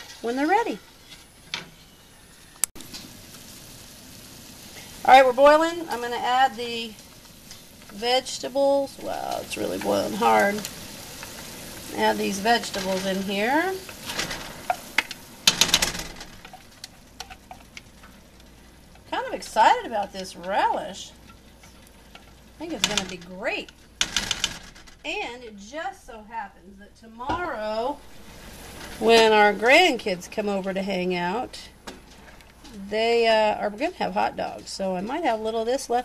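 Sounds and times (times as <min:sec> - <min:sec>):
liquid boiling hard: 0:00.0 - 0:25.9, 0:27.4 - 0:34.5
stirring liquid in a pot: 0:16.4 - 0:24.2.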